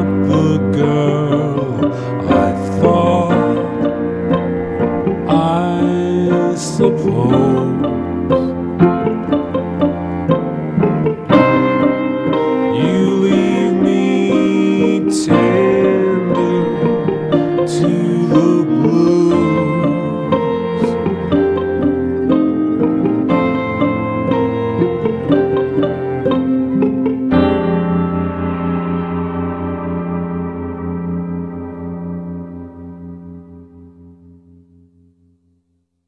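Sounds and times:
sustained cello line: 0:00.0 - 0:33.5
picked guitar notes: 0:00.0 - 0:35.3.

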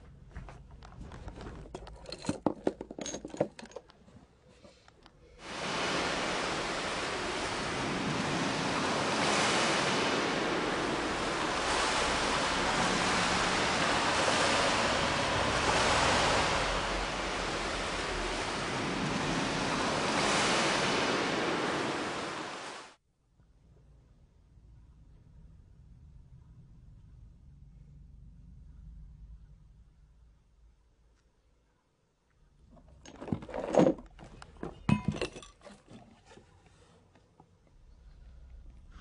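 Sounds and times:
ocean waves rushing: 0:05.4 - 0:23.0.

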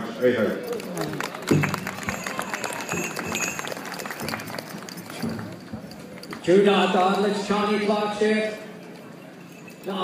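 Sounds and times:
audience clapping: 0:00.7 - 0:05.7.

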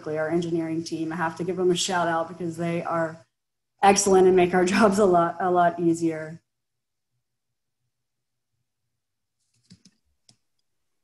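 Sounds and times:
faint computer clicks: 0:09.5 - 0:10.7.

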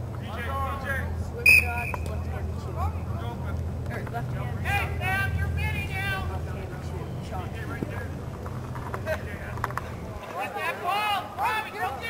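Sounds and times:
people shouting: 0:10.3 - 0:12.0.

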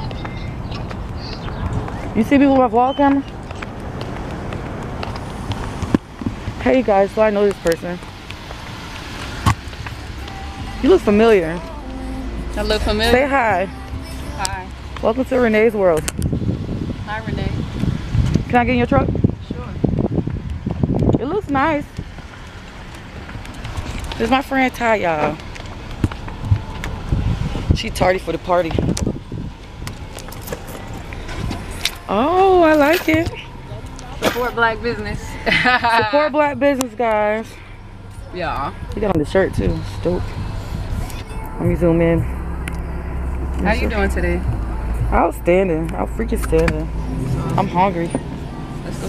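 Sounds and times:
low rumble: 0:00.0 - 0:49.0
vehicle engine idling: 0:00.0 - 0:49.0.

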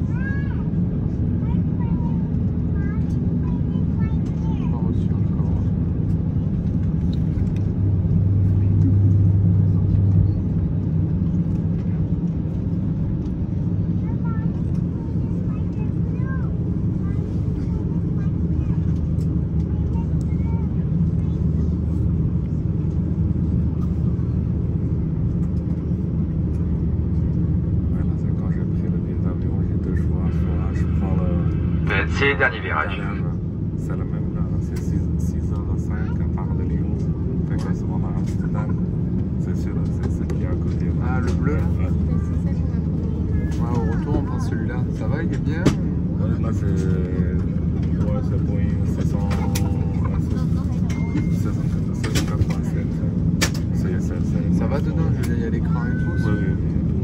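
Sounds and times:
aircraft cabin engine rumble: 0:00.0 - 0:57.0.

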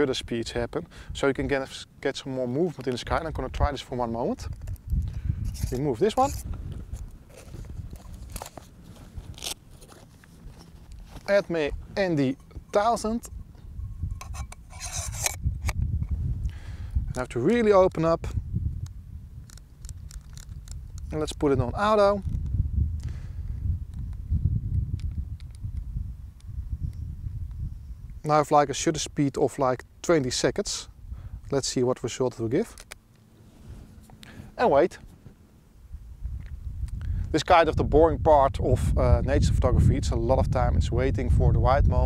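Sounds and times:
wind rumble on microphone: 0:02.6 - 0:29.2, 0:29.8 - 0:32.7, 0:33.4 - 0:42.0
crinkly rustles and clicks: 0:04.4 - 0:11.6, 0:19.4 - 0:21.4.

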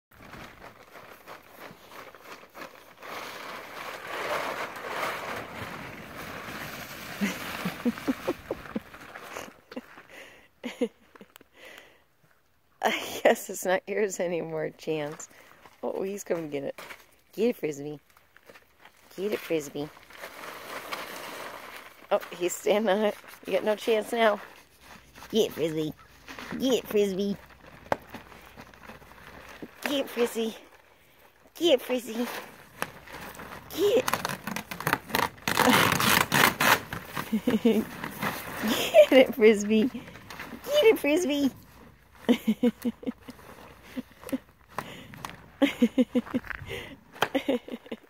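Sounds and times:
plastic tarp rustling: 0:00.1 - 0:10.0, 0:18.4 - 0:46.8
person laughing: 0:07.2 - 0:11.4, 0:37.2 - 0:38.0, 0:38.6 - 0:39.6, 0:42.2 - 0:48.0.

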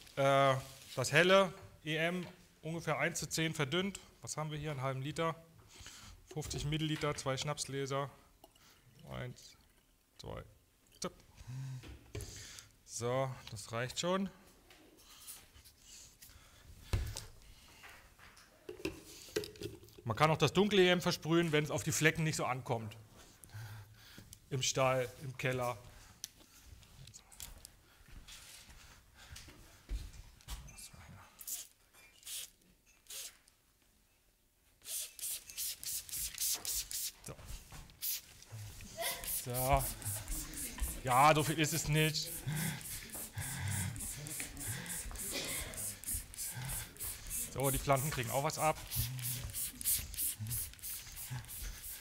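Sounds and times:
spray bottle squirts: 0:31.4 - 0:33.5, 0:34.8 - 0:37.3, 0:37.9 - 0:52.0.

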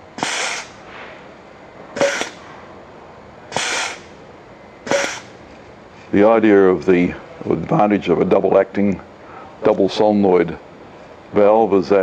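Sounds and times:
compressed air hissing from valve: 0:00.2 - 0:00.9, 0:02.0 - 0:02.4, 0:03.5 - 0:04.2, 0:04.8 - 0:05.4.

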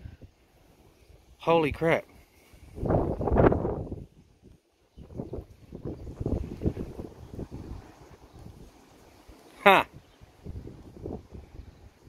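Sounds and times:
wind buffeting microphone: 0:02.6 - 0:12.0.

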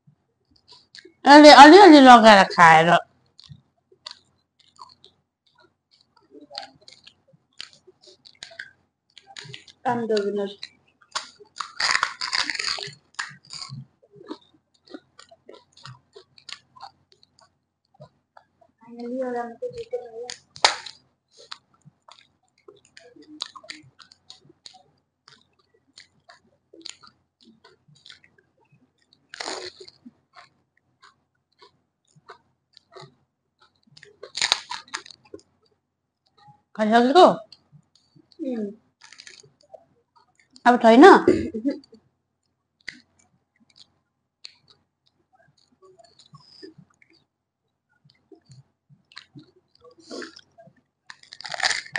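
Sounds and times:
moist chewing clicks: 0:00.4 - 0:01.2, 0:03.0 - 0:36.8, 0:37.4 - 0:40.6, 0:41.8 - 0:51.9
crunching of crisp shell: 0:10.6 - 0:17.5, 0:20.3 - 0:35.5, 0:39.0 - 0:40.6, 0:48.1 - 0:51.9
mouth clicks: 0:29.0 - 0:35.5, 0:48.0 - 0:51.9.

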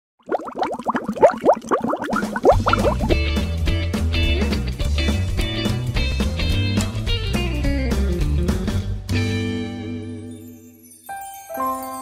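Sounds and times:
water boiling in a saucepan: 0:00.2 - 0:03.2.

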